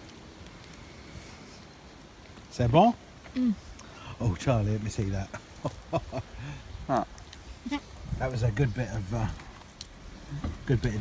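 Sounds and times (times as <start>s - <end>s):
low steady hush: 0.0s - 11.0s.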